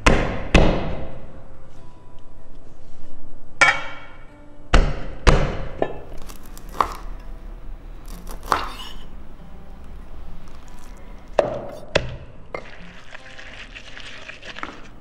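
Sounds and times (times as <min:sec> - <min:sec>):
knife chopping on wooden board: 0:06.3 - 0:07.1, 0:08.1 - 0:09.1.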